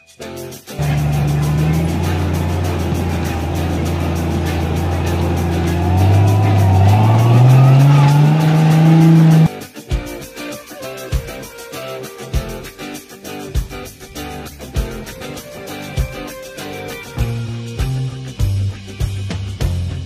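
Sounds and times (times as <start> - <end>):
car engine running under load: 0.8 - 9.5.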